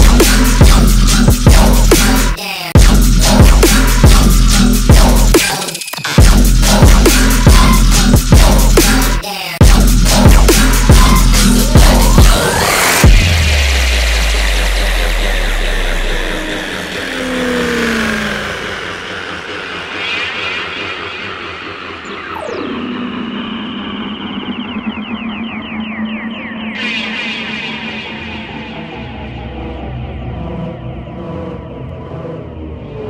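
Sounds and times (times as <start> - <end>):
heavy bass hit: 9.6 - 19.9
stuttering glitch effects: 9.8 - 29.7
low drone: 9.8 - 33.0
falling synth sweep: 10.2 - 33.0
synth noise wash: 11.1 - 33.0.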